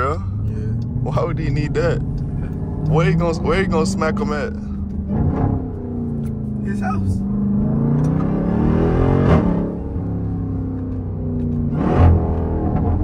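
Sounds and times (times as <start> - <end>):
car engine accelerating: 0.0 - 13.0.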